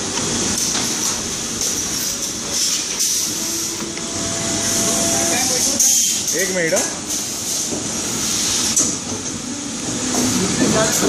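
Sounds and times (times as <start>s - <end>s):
moulding machine running: 0.0s - 11.0s.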